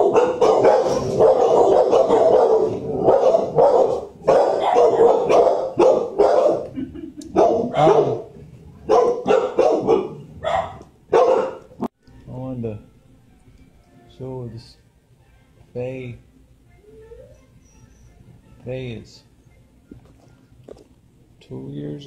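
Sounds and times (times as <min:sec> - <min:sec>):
dogs barking: 0:00.0 - 0:11.9.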